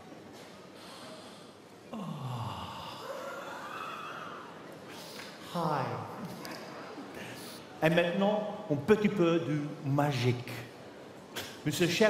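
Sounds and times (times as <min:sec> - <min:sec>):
murmur of a large hall: 0:00.0 - 0:12.0.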